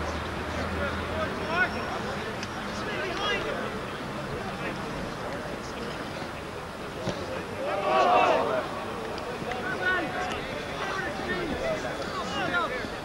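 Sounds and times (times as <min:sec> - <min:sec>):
people shouting and calling: 0:07.6 - 0:08.8, 0:09.5 - 0:13.0.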